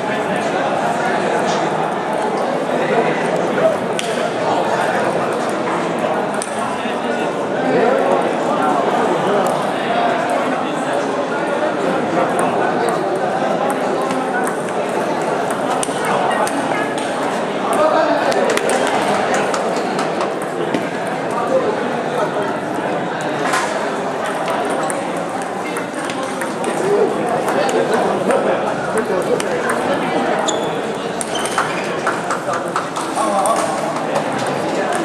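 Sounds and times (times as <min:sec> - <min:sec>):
chatter of many voices: 0:00.0 - 0:35.0
table tennis balls clicking: 0:12.4 - 0:21.2, 0:24.3 - 0:27.9, 0:29.2 - 0:30.0.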